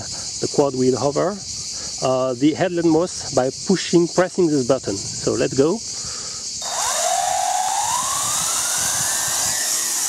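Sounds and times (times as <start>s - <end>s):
propeller hiss: 6.3s - 10.0s
drone motor whine: 6.6s - 10.0s.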